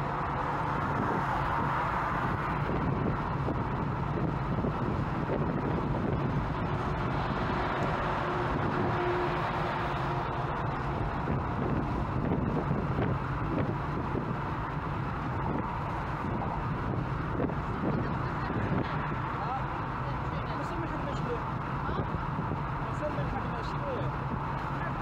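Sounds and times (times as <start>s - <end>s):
car road and wind noise: 0.0s - 25.0s.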